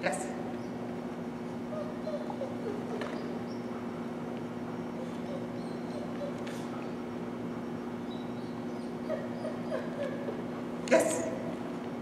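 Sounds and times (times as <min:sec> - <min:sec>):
steady low hum: 0:00.0 - 0:12.0
dog whining: 0:01.4 - 0:10.7.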